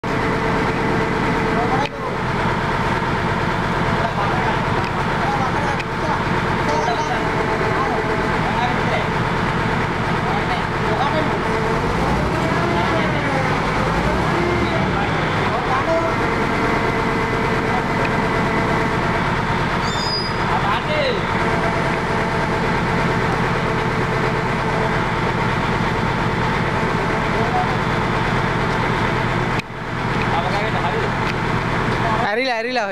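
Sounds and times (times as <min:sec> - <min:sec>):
truck engine running: 0:00.0 - 0:32.9
voices: 0:00.2 - 0:32.9.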